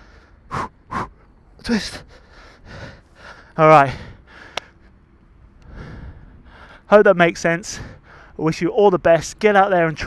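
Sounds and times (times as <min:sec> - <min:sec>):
man breathing out heavily: 0:00.0 - 0:01.3, 0:01.9 - 0:04.8, 0:05.6 - 0:06.9, 0:07.7 - 0:08.4
man speaking: 0:01.6 - 0:02.1, 0:03.6 - 0:04.1.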